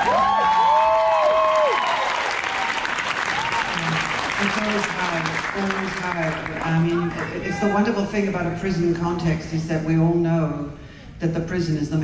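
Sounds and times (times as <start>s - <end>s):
people whooping: 0.0s - 4.7s
audience applauding: 0.0s - 7.9s.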